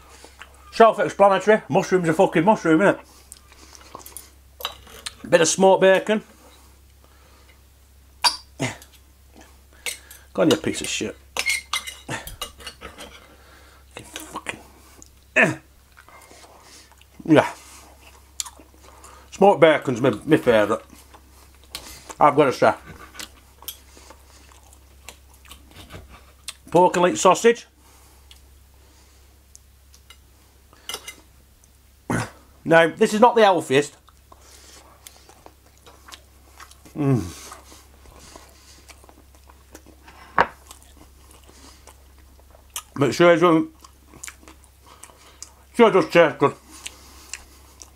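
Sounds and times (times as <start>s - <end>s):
person chewing food: 3.2s - 5.3s, 11.4s - 19.3s, 20.1s - 22.2s, 22.8s - 26.7s, 28.1s - 28.5s, 34.0s - 43.0s, 43.7s - 45.7s, 46.6s - 47.9s
cutlery scraping on ceramic plate: 11.4s - 13.3s
short vocal sound: 36.9s - 37.4s.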